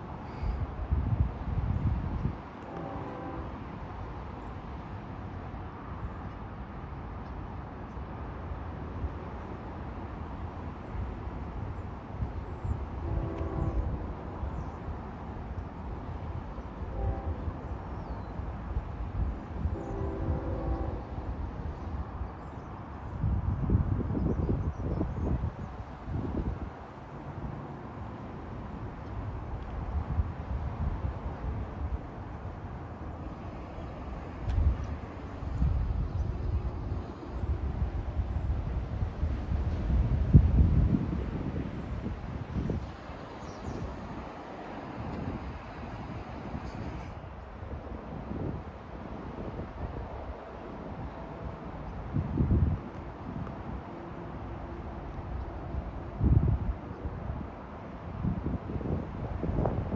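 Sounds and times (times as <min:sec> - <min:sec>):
wind buffeting microphone: 0:00.0 - 0:03.9, 0:10.9 - 0:28.0, 0:28.6 - 0:54.0, 0:54.8 - 0:59.9
distant train horn: 0:02.5 - 0:04.7, 0:12.6 - 0:14.9, 0:16.0 - 0:22.0.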